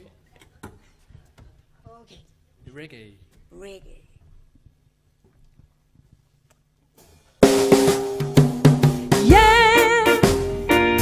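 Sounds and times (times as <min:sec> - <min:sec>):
faint clicks and knocks: 0:04.2 - 0:07.0.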